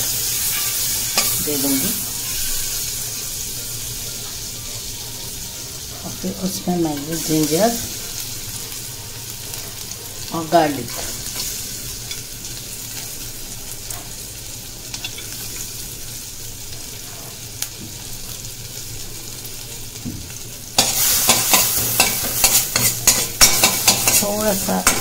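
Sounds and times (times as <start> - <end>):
garlic sizzling in butter: 0.0 - 25.0.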